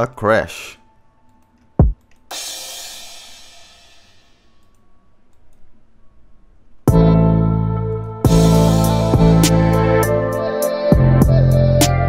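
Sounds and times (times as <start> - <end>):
crash cymbal struck: 2.3 - 4.6.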